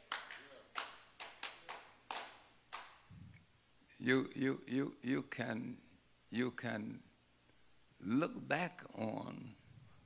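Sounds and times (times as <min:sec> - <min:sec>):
hand claps: 0:00.0 - 0:03.1.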